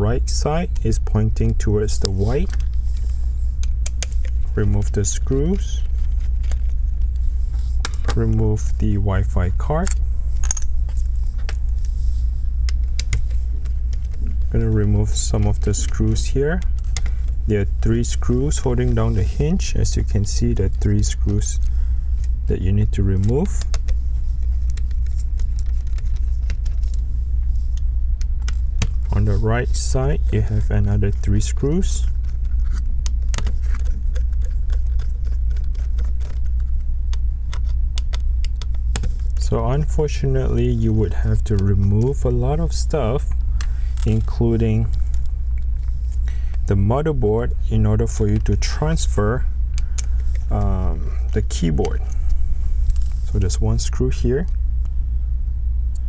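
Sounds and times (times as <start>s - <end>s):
low hum: 0.0s - 56.0s.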